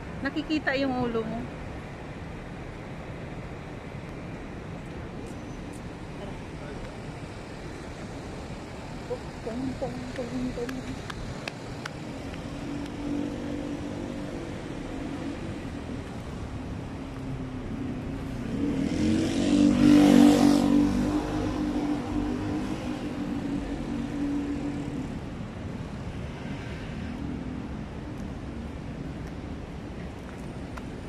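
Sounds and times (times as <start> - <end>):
street traffic engines: 0.0 - 31.0
motorcycle passing: 9.1 - 28.0.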